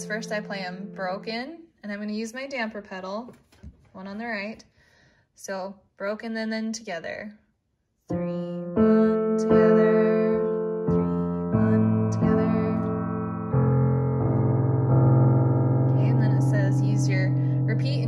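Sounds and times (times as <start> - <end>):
digital piano notes ringing: 0.0 - 1.3, 8.2 - 18.0.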